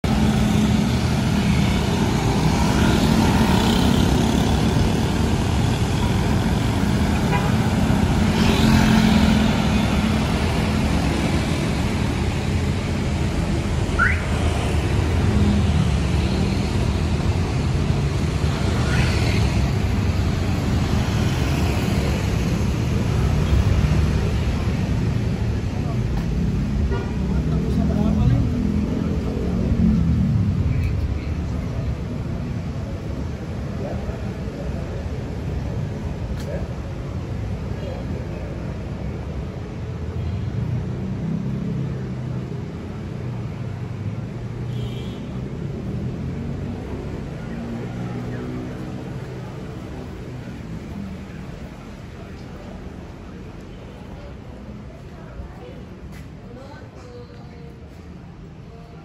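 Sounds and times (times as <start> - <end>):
motorbikes and cars passing: 0.0 - 59.0.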